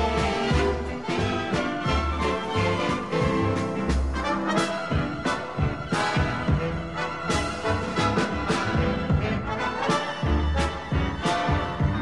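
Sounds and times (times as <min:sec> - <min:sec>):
orchestral brass music: 0:00.0 - 0:12.0.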